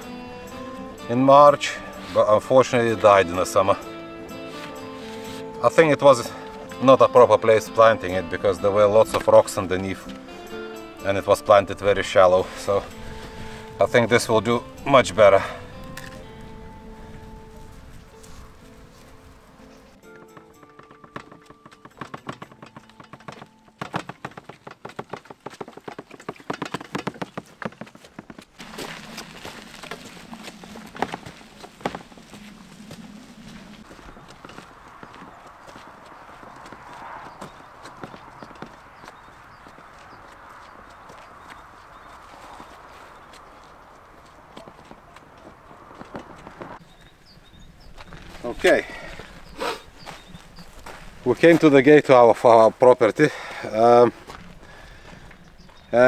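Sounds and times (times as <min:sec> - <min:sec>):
wheelbarrow rolling on dirt: 0:00.0 - 0:10.3, 0:11.0 - 0:56.0
footsteps: 0:03.8 - 0:06.8, 0:15.8 - 0:47.2, 0:47.9 - 0:52.5, 0:53.3 - 0:56.0.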